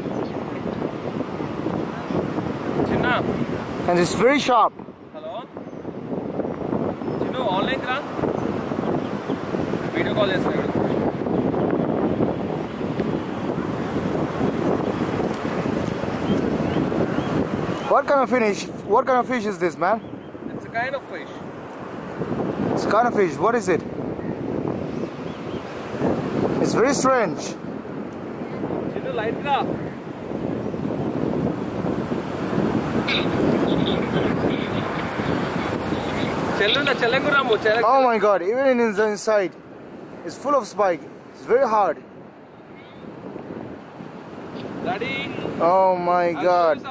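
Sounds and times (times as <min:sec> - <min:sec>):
wind buffeting microphone: 0:00.0 - 0:46.9.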